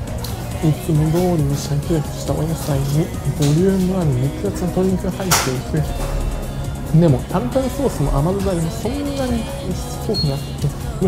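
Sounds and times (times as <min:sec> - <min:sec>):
background music: 0:00.0 - 0:11.0
man speaking: 0:00.6 - 0:10.5.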